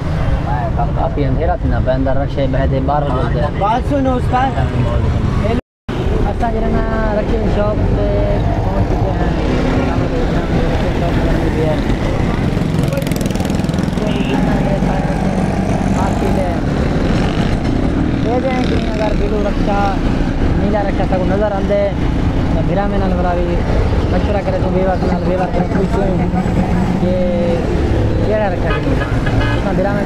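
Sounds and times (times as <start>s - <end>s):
traffic rumble: 0.0s - 30.0s
man talking: 0.4s - 16.7s, 18.2s - 30.0s.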